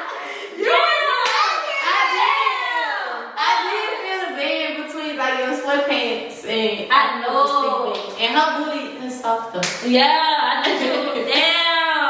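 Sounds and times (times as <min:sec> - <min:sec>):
hands clapping: 0:01.1 - 0:01.6, 0:09.6 - 0:09.9.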